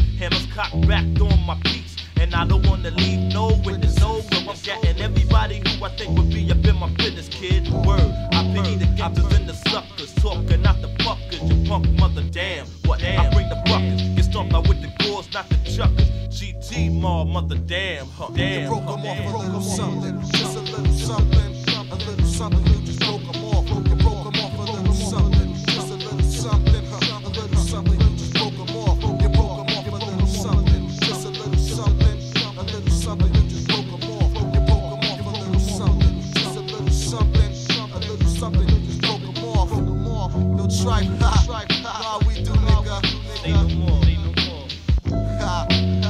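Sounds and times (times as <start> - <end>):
bass line: 0.0 - 46.0
hip hop beat: 0.0 - 46.0
held melodic tones: 18.3 - 37.7.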